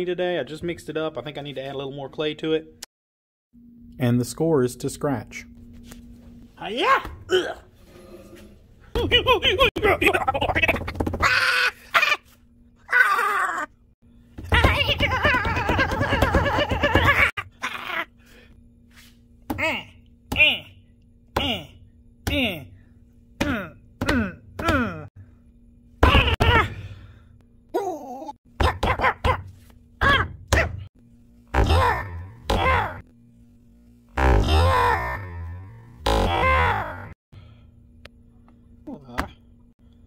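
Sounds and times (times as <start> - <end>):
man groaning: 7.3 - 8.4, 23.4 - 25.1, 34.4 - 35.6.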